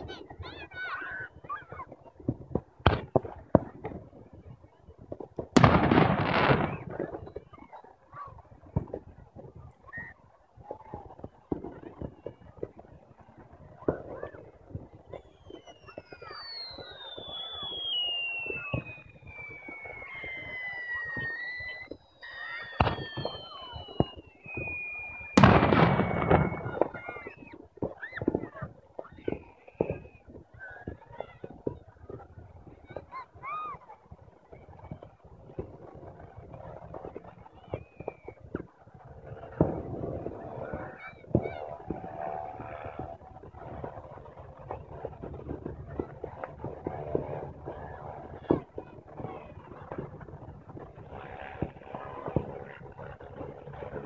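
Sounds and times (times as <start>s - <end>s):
fireworks whistling: 0.0s - 4.6s, 5.2s - 8.0s, 9.8s - 54.0s
firework bangs: 0.0s - 9.6s, 10.6s - 33.1s, 34.1s - 54.0s
firework crackling burst: 0.0s - 9.7s, 10.6s - 33.1s, 42.9s - 54.0s.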